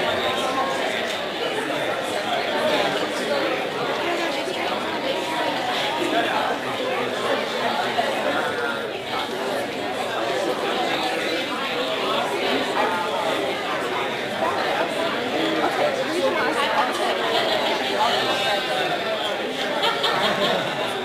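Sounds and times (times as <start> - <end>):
babble of many voices: 0.0 - 21.0.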